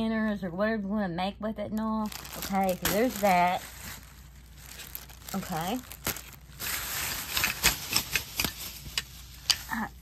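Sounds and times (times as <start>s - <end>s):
plastic packaging crinkling: 2.0s - 9.8s.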